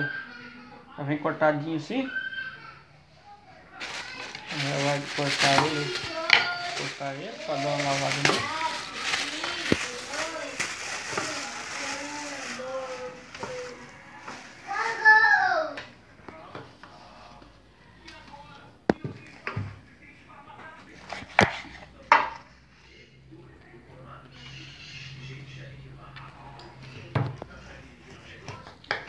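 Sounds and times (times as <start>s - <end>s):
plastic bag crinkling: 3.7s - 15.7s.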